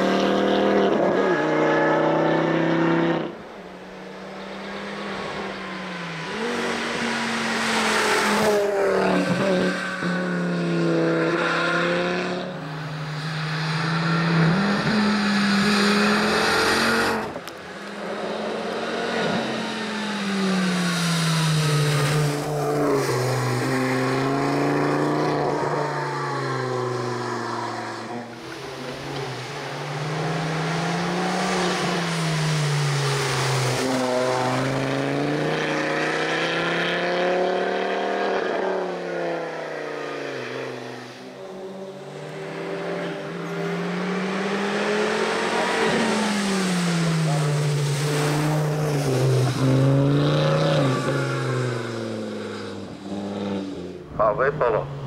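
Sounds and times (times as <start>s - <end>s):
race car engine revving: 0.0s - 55.0s.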